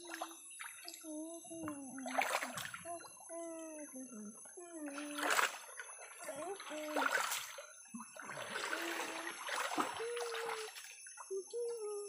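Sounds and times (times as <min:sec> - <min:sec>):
stream water splashing: 0:01.6 - 0:02.9, 0:04.9 - 0:11.0.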